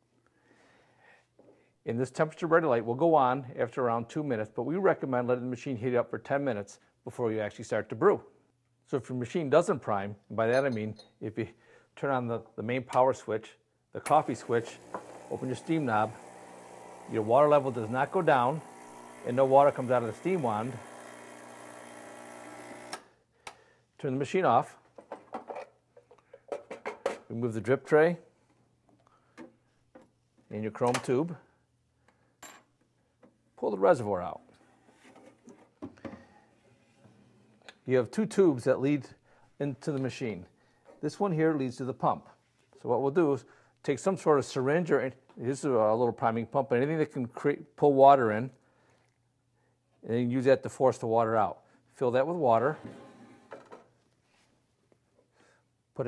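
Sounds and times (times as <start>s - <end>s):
soft handling sounds: 53.3s - 55.3s.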